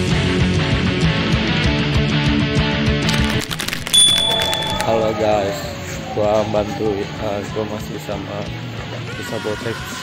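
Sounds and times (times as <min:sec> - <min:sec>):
clicks: 0:03.1 - 0:05.1
short high tone: 0:03.8 - 0:05.3.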